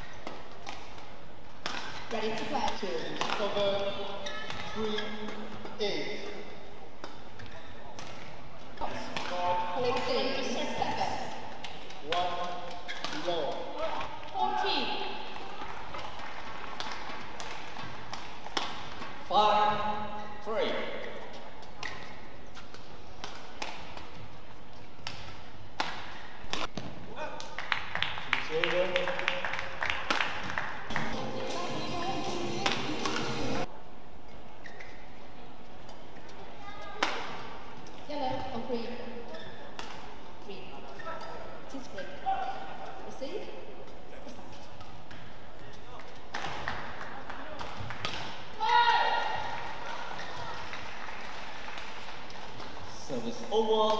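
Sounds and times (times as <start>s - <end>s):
rackets hitting shuttlecock: 0.0s - 6.4s, 7.0s - 10.6s, 11.5s - 19.2s, 20.9s - 24.3s, 24.9s - 27.5s, 32.6s - 33.7s, 37.0s - 38.0s, 39.7s - 40.2s, 44.8s - 49.6s
shoes squeaking on court: 0.0s - 9.2s, 9.8s - 15.0s, 20.1s - 27.0s, 34.6s - 37.0s, 37.8s - 42.2s.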